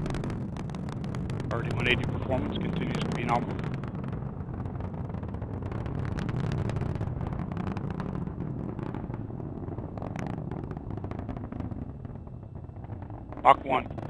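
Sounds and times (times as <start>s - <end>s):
rocket engine rumble with crackling: 0.0s - 14.0s.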